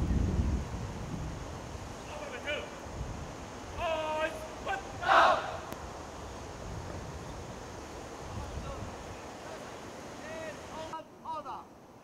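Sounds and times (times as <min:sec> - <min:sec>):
outdoor background noise: 0:00.0 - 0:12.0
cadets shouting in unison: 0:03.7 - 0:05.7.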